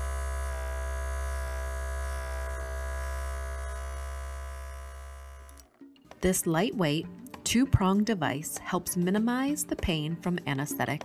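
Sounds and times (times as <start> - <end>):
steady electric buzz: 0.0 - 5.7.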